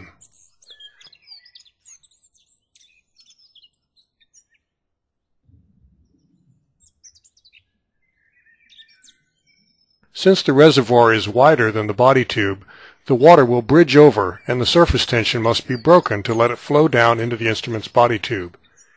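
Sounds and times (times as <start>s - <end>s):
birds chirping: 0.0s - 18.9s
low rumble: 5.4s - 6.7s.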